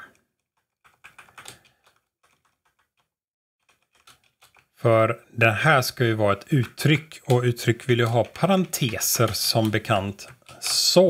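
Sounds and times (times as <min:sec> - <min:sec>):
typing on computer keyboard: 0:00.1 - 0:04.8, 0:06.4 - 0:11.0.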